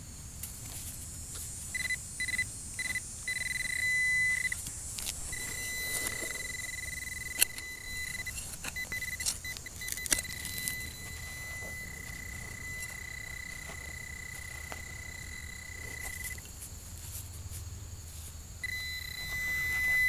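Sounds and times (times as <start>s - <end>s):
metal detector beeping: 1.7s - 16.5s, 18.6s - 20.0s.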